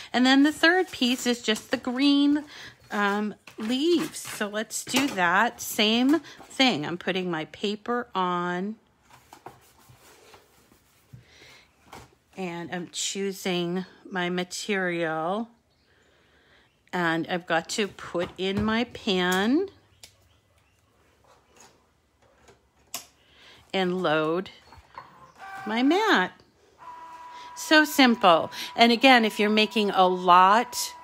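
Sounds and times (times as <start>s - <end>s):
cardstock rustling: 0.4s - 6.5s.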